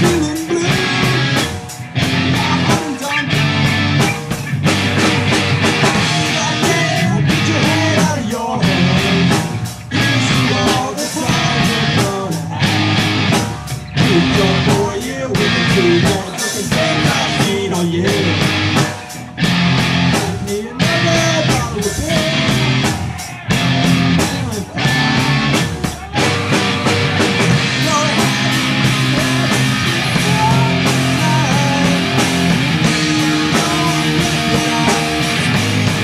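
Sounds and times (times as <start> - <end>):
live rock band playing: 0.0 - 36.0.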